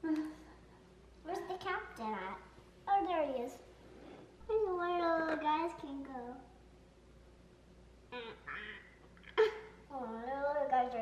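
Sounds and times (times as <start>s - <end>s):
person imitating duck quacks: 8.2s - 9.6s.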